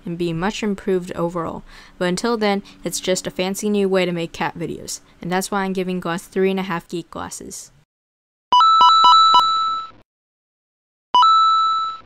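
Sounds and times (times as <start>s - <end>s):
electronic game beeps: 8.6s - 10.0s.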